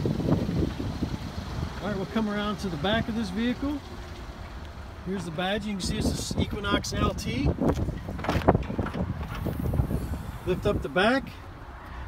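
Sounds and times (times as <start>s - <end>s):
wind rumble on microphone: 0.0s - 3.3s, 5.2s - 11.1s.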